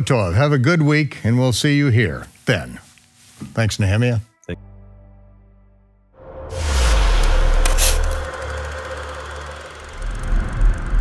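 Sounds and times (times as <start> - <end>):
bright hissing swell: 6.5 - 11.0.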